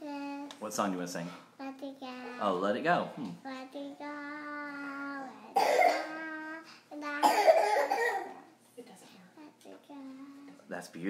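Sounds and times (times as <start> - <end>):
girl singing loudly: 3.5 - 8.2.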